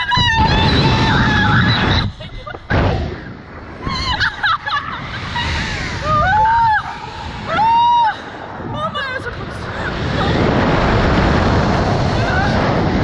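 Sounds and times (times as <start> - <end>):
girls laughing and squealing: 0.0 - 2.8, 3.8 - 10.3
wind rushing over microphone: 0.0 - 13.0.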